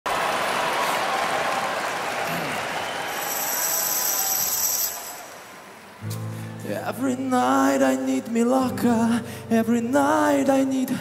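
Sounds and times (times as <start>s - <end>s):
audience applauding: 0.1s - 6.4s.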